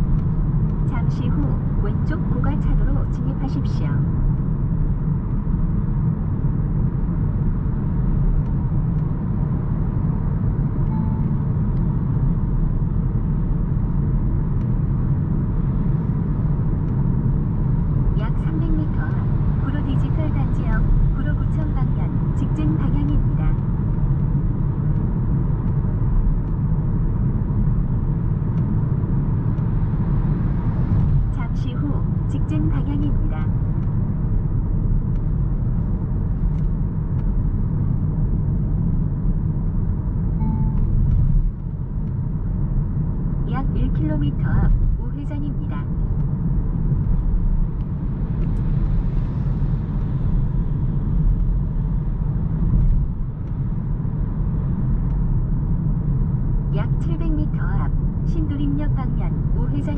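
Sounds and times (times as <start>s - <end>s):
road and tyre rumble: 0.0s - 59.9s.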